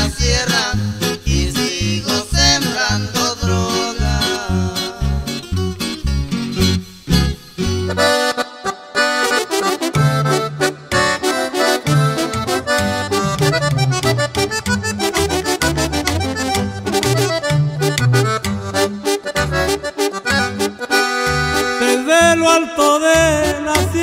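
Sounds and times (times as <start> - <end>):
bouncing bass line: 0.0 - 8.4, 9.0 - 22.5, 23.1 - 24.0
button accordion melody: 0.0 - 24.0.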